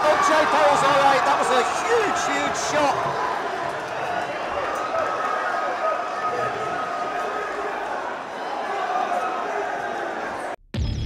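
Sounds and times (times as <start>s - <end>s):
crowd shouting and talking: 0.0s - 10.6s.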